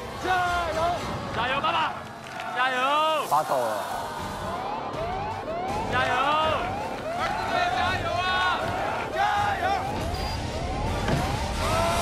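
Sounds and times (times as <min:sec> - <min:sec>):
rising siren-like tone: 0:03.8 - 0:08.4.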